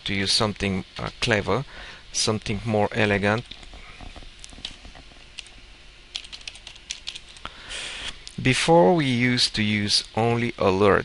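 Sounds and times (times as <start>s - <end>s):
soft hiss: 0.0s - 11.0s
computer keyboard typing: 4.5s - 7.5s.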